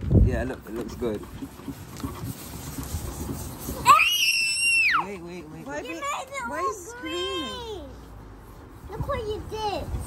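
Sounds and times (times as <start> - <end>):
child screaming: 3.8 - 5.0.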